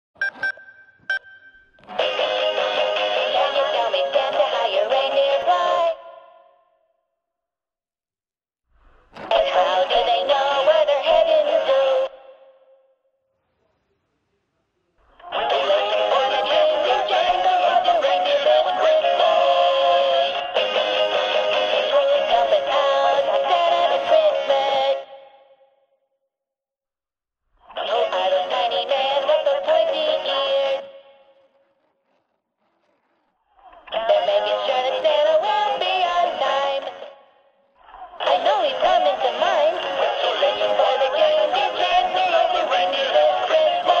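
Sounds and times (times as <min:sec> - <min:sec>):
toy backing music: 0:02.0 - 0:05.9, 0:15.3 - 0:24.9, 0:38.2 - 0:44.0
tinny electronic voice singing: 0:02.0 - 0:06.6, 0:09.2 - 0:12.6, 0:15.1 - 0:25.3, 0:27.7 - 0:31.3, 0:33.6 - 0:37.2, 0:37.8 - 0:44.0.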